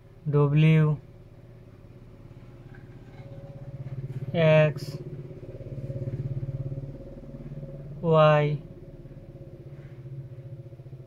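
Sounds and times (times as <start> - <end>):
small engine running: 0.9 - 11.0.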